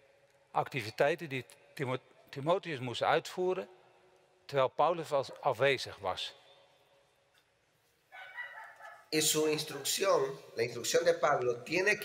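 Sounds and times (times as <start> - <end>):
distant rooster crowing: 8.2 - 9.1.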